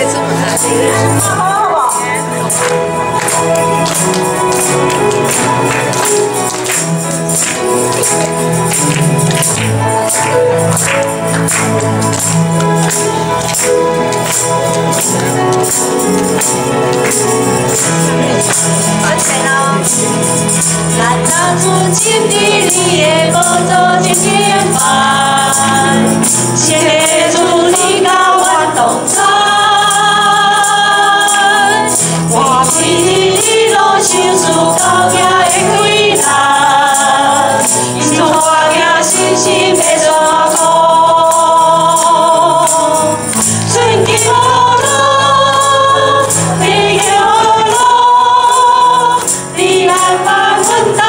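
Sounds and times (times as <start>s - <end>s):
congregation singing a hymn: 0.0s - 51.0s
jingling percussion beat: 0.0s - 51.0s
musical accompaniment: 0.0s - 51.0s.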